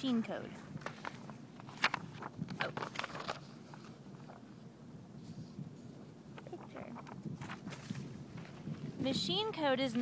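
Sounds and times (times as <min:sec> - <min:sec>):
paper rustling and crackling: 0:00.6 - 0:04.6, 0:05.4 - 0:09.0.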